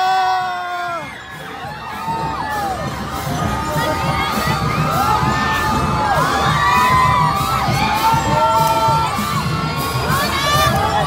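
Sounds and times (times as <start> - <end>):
crowd cheering and screaming: 0.0 - 11.0.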